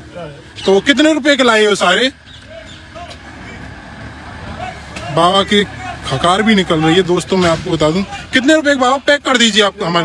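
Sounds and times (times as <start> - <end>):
low rumble of distant traffic: 0.0 - 10.0.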